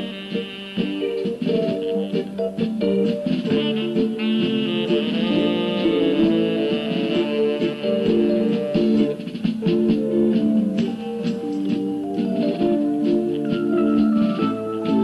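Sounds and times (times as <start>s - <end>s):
instrumental music: 0.0s - 15.0s.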